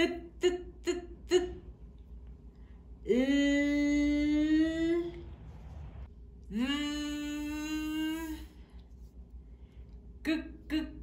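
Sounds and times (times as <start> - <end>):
woman humming: 0.0 - 1.7, 3.0 - 5.3, 6.5 - 8.6.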